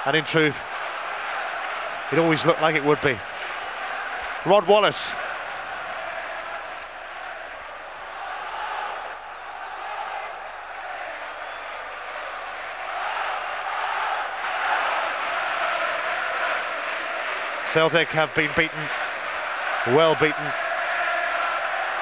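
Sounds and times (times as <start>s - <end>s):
stadium crowd roaring: 0.0s - 22.0s.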